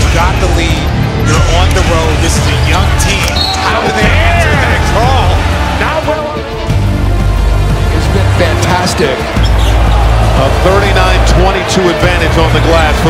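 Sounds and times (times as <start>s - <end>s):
background music with deep bass: 0.0s - 13.0s
crowd voices: 0.0s - 13.0s.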